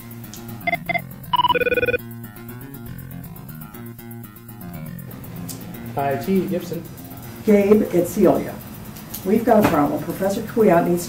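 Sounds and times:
keypad beeps: 0.7s - 2.0s
warbling electronic telephone ring: 0.7s - 2.0s.

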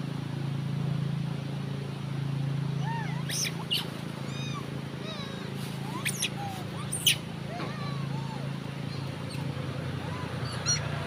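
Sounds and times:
steady low hum: 0.0s - 11.0s
monkeys squeaking and chirping: 2.8s - 11.0s.

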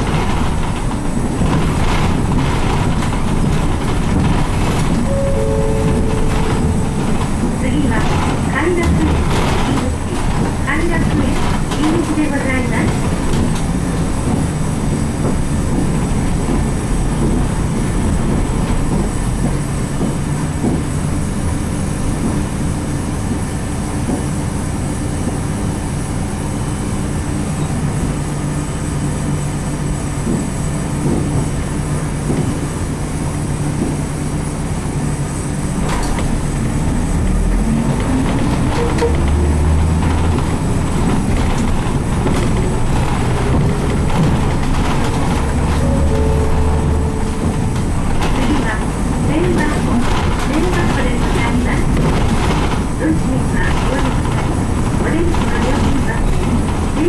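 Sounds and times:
bus diesel engine running: 0.0s - 57.0s.

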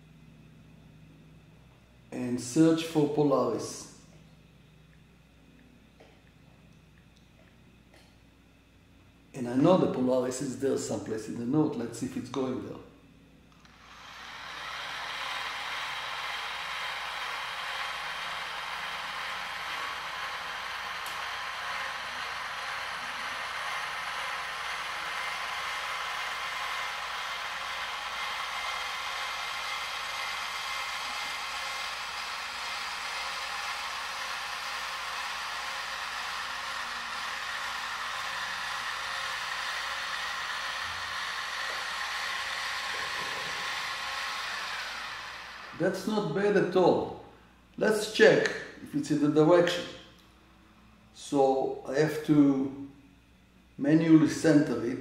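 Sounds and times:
motors whirring with high whine: 0.0s - 50.4s.

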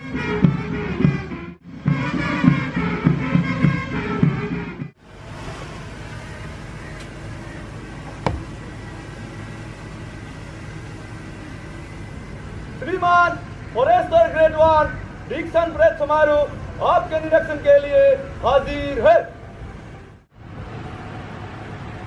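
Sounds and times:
outdoor background noise: 0.0s - 22.0s
sharp knock: 8.2s - 8.5s.

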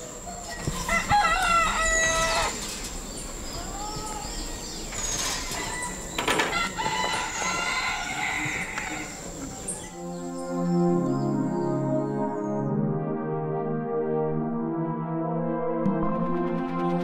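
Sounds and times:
bird calls: 0.0s - 11.8s
rooster crowing: 0.2s - 2.7s, 5.4s - 9.8s.

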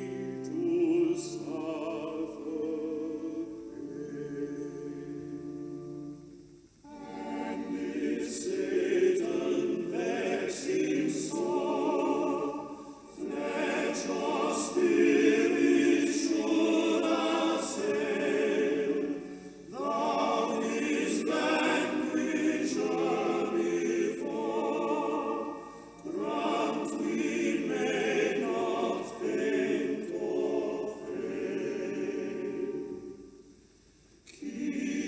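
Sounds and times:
choir singing sacred music: 0.0s - 35.0s.

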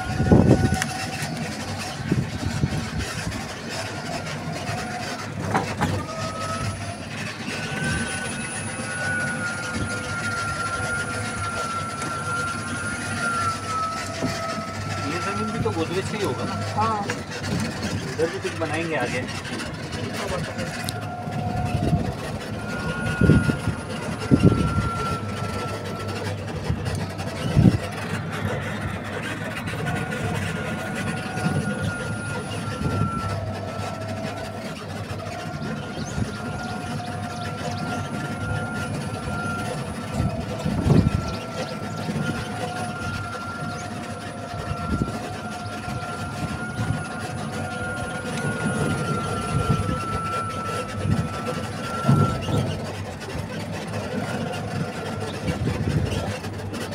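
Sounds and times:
vehicle motor whine: 0.0s - 56.9s.

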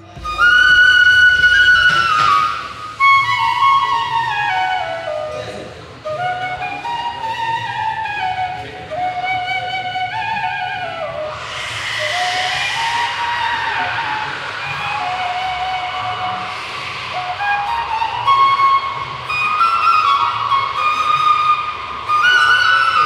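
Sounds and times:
breathy bamboo flute melody: 0.0s - 23.0s.

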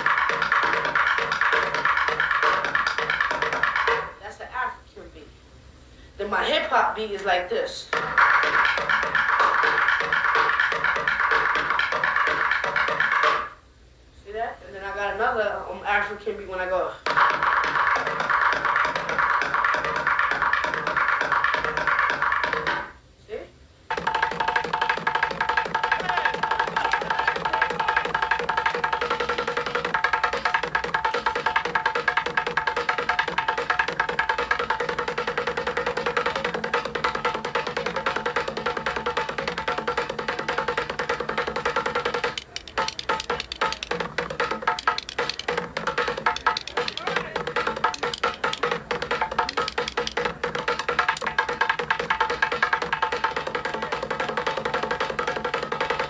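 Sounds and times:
drumsticks beating on plastic bucket: 0.0s - 4.1s, 17.1s - 22.9s, 23.9s - 56.0s
held tones: 23.9s - 56.0s.

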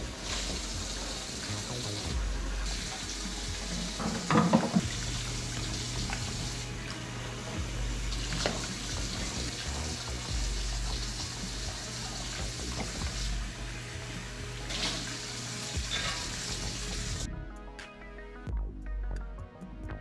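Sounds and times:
tap running into sink: 3.9s - 5.0s, 8.2s - 9.2s
dishes clinking in sink: 4.0s - 4.8s.

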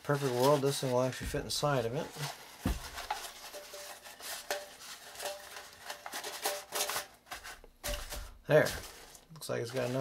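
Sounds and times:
metal stove scraping: 1.9s - 7.6s.

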